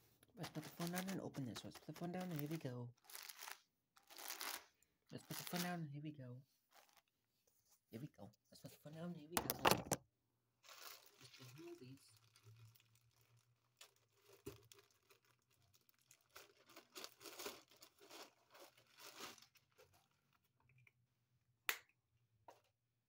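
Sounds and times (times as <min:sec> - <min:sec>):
plastic bag crinkling and tearing: 0:00.4 - 0:05.8, 0:06.7 - 0:07.1, 0:10.6 - 0:20.5.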